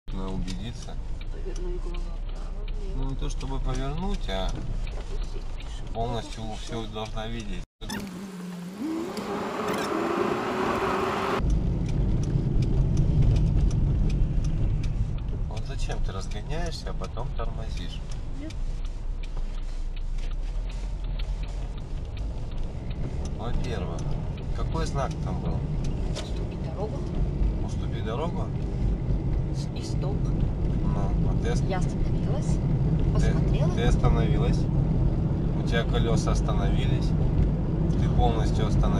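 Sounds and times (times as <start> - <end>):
car engine and road rumble: 0.1 - 38.9.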